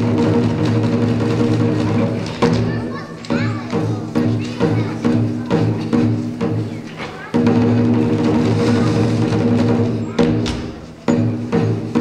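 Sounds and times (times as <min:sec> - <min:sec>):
drum gong and cymbals: 0:00.0 - 0:12.0.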